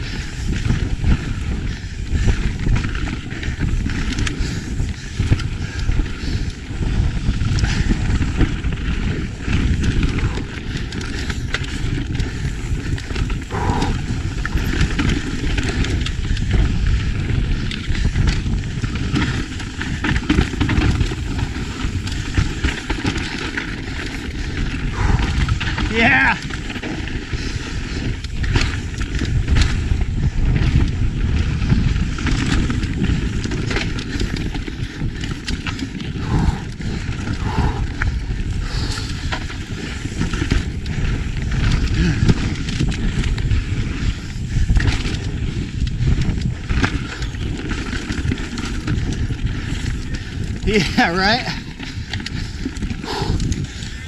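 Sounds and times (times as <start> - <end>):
bike rattling: 0.0 - 54.0
wind buffeting microphone: 0.0 - 54.0
tyres rumbling over dirt and rocks: 0.4 - 54.0.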